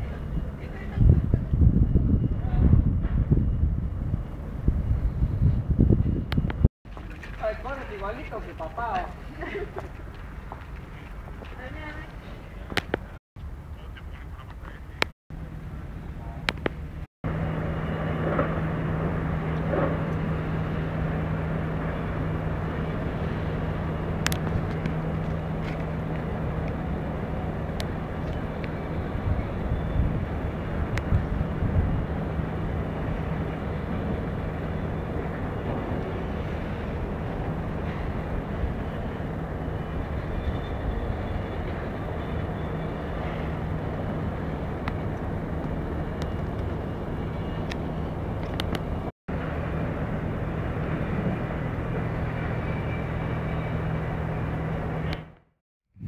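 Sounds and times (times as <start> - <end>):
distant traffic and machinery hum: 0.0 - 56.0.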